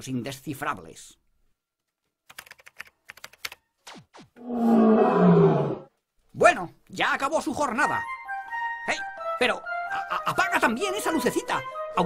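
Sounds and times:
computer keyboard typing: 2.2 - 3.7
man yawning roar: 4.4 - 5.9.

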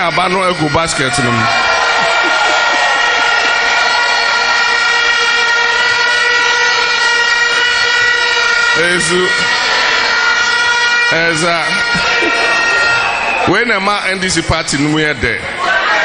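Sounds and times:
steady horn blare: 0.0 - 15.0.

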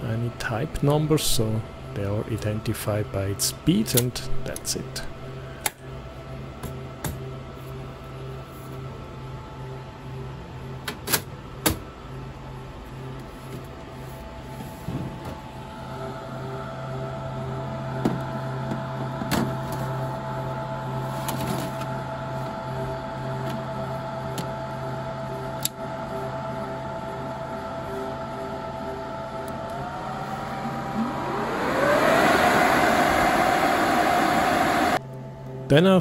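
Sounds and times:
server fans humming: 0.0 - 35.9
fans spinning up with whine: 0.0 - 36.0.

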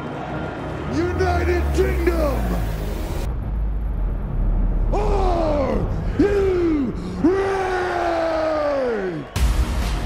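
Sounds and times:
low rumble: 2.1 - 7.3.

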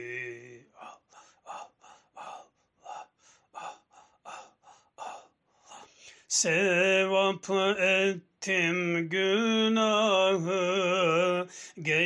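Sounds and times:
rhythmic breath chanting: 0.0 - 6.4.

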